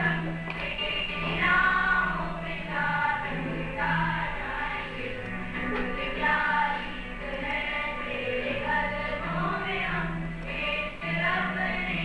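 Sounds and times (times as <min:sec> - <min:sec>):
group singing in unison: 0:00.0 - 0:12.0.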